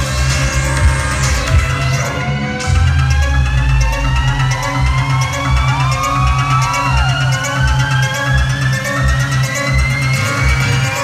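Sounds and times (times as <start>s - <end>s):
pulsing bass: 0.0s - 11.0s.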